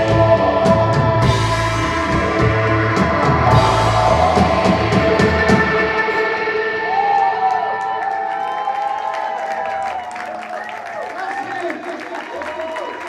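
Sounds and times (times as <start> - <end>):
live rock band playing: 0.0 - 8.0
crowd cheering and whooping: 3.5 - 13.0.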